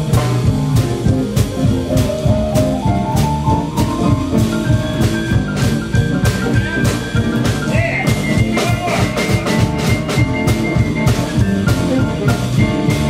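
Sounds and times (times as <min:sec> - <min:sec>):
drum kit beat: 0:00.0 - 0:13.0
keyboard playing: 0:00.0 - 0:13.0.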